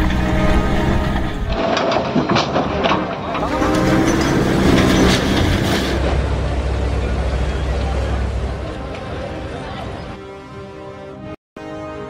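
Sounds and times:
crashing masonry and debris: 0.0 - 6.4
diesel engines running: 0.0 - 10.7.

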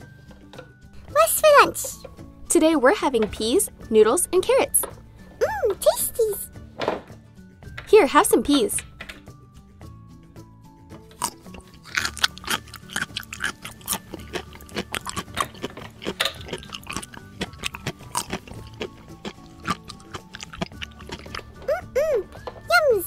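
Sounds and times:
soft background music: 0.0 - 23.0.

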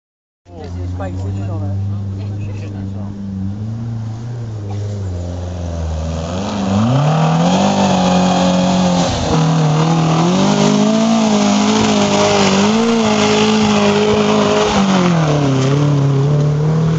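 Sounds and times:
car engine idling and revving: 0.5 - 16.9.

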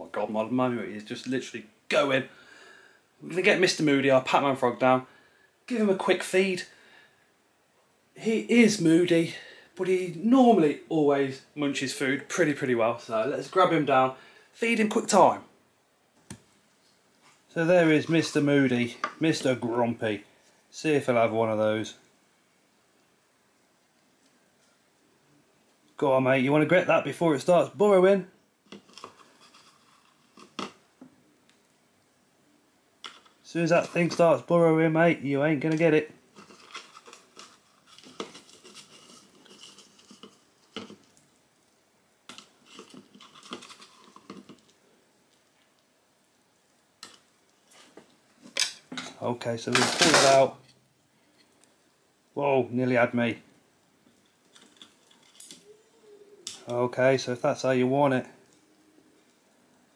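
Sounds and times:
man speaking: 0.0 - 2.3, 3.2 - 5.1, 5.7 - 6.7, 8.2 - 15.5, 17.5 - 22.0, 26.0 - 28.4, 33.5 - 36.1, 49.2 - 50.6, 52.4 - 53.4, 56.3 - 58.4.

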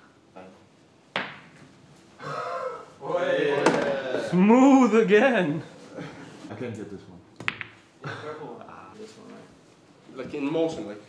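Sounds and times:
pool cue and balls striking: 1.1 - 1.8, 3.6 - 4.0, 7.4 - 7.9.

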